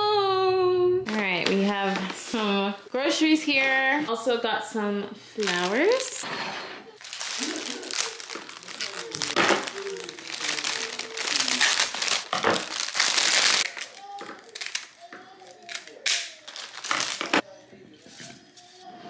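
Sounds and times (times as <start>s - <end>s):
cellophane crinkling: 5.4s - 6.2s, 7.0s - 17.4s.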